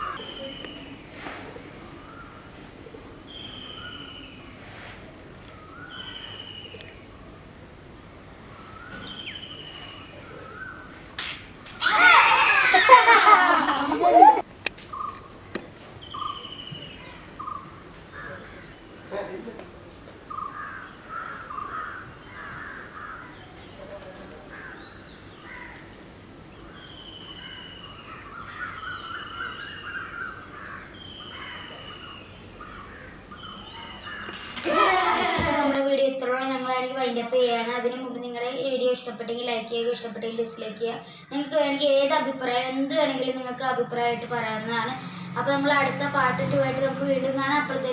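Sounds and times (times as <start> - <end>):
birds whistling: 0.0 - 2.5, 3.2 - 4.8, 5.5 - 12.9, 14.9 - 19.1, 19.7 - 34.5
bird thin whistle: 3.3 - 4.3
children's voices: 11.7 - 14.5, 34.6 - 47.9.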